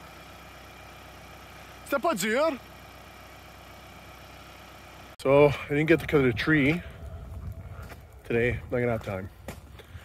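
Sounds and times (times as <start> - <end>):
tractor diesel engine running: 0.0 - 10.0
man speaking: 5.2 - 6.9.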